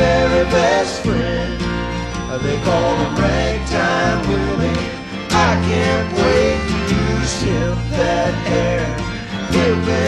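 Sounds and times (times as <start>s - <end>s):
acoustic guitar: 0.0s - 10.0s
country-rock band with singing: 0.0s - 10.0s.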